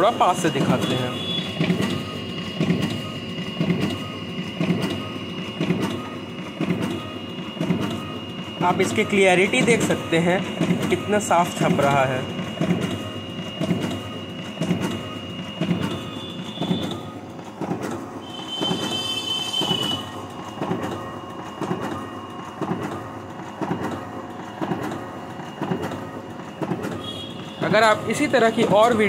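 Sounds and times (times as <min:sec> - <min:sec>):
printer rhythmic clatter: 0:00.0 - 0:29.0
brief high tone: 0:18.2 - 0:20.2.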